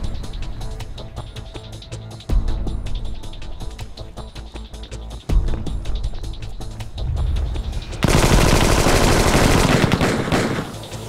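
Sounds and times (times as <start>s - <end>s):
automatic rifle fire: 8.0s - 11.0s.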